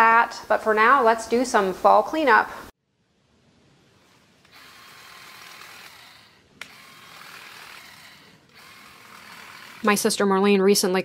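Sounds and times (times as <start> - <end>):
cordless trimmer running: 4.5 - 10.2.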